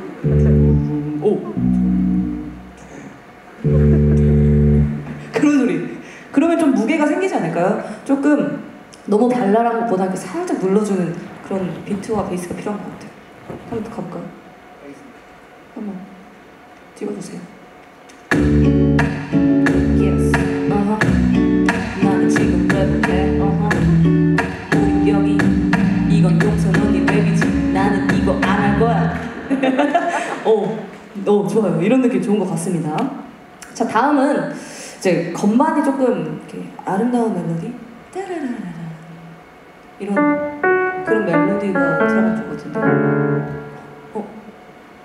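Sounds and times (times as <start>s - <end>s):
deep bass line: 0.0s - 2.9s, 3.6s - 5.3s, 18.3s - 29.3s
keyboard music loop with beat: 0.2s - 0.9s, 3.6s - 5.2s, 18.3s - 28.8s, 42.8s - 44.1s
electronic keyboard piano melody: 3.6s - 5.3s, 40.2s - 44.2s.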